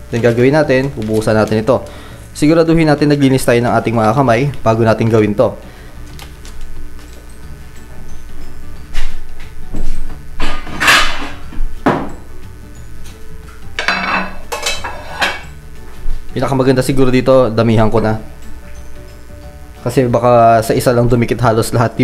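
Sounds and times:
light background music: 0.0s - 22.0s.

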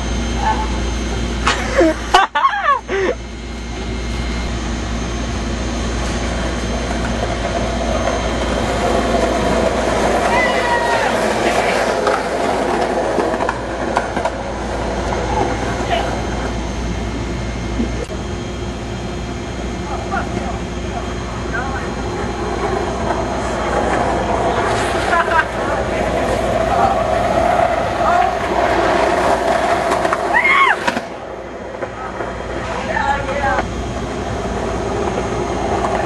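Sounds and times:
skateboard wheels rolling on concrete: 3.7s - 18.2s, 19.0s - 36.0s
skateboard clacks: 6.9s - 14.5s, 22.6s - 33.7s.

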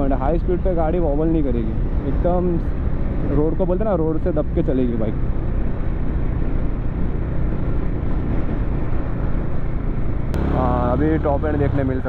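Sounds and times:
wind and road noise: 0.0s - 12.0s
motorcycle engine cruising: 1.8s - 12.0s.

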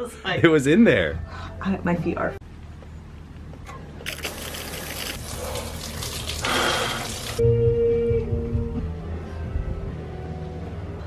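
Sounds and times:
music: 0.0s - 2.4s, 7.4s - 11.0s
shower water rushing: 4.1s - 7.4s.

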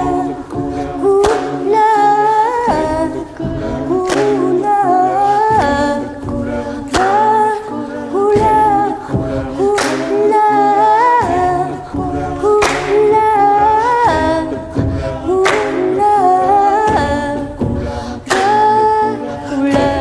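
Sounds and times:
choir singing a cappella: 0.0s - 20.0s.

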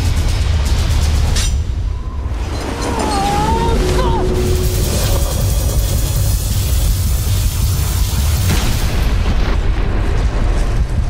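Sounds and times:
storm wind rumble and hiss: 0.0s - 11.0s.

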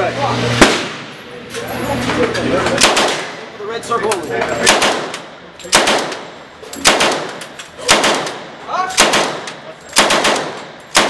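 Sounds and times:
submachine gun shot: 0.6s - 1.1s, 2.8s - 3.4s, 4.6s - 5.1s, 5.7s - 8.4s, 9.0s - 11.0s.

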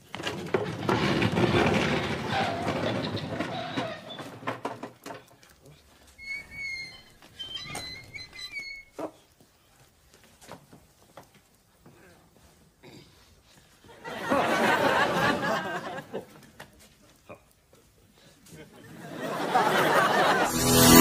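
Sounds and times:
wooden furniture scraping on floor: 0.1s - 5.2s
short high squeaks: 6.2s - 9.2s.

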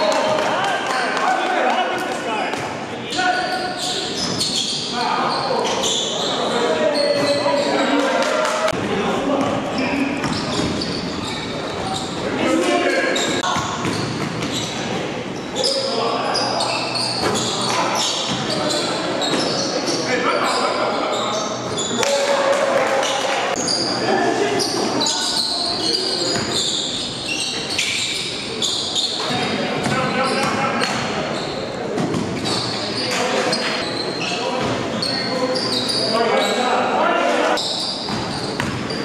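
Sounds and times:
players shouting and chattering: 0.0s - 39.0s
basketball bouncing on gym floor: 13.4s - 14.6s, 38.1s - 38.9s.

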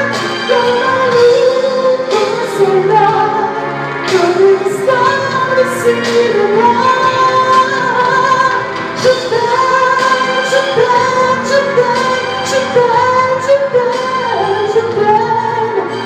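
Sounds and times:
music with light steady beat: 0.0s - 16.0s.

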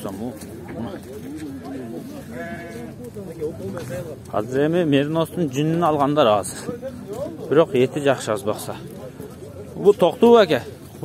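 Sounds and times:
sheep bleating: 1.8s - 3.0s.

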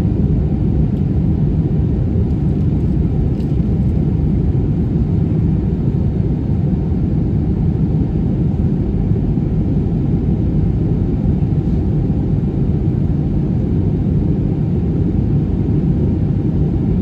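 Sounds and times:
jet cabin rumble: 0.0s - 17.0s.

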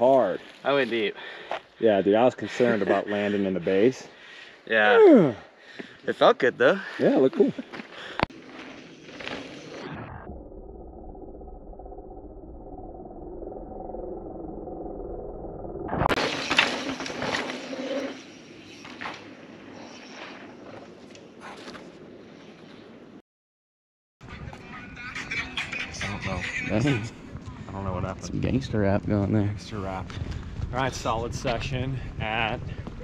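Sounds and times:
bike tyres sliding on dirt: 7.7s - 9.9s, 16.2s - 21.1s.

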